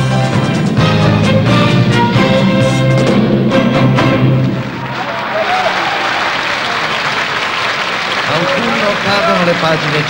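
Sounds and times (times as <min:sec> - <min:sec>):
audience applauding: 0:04.4 - 0:10.0.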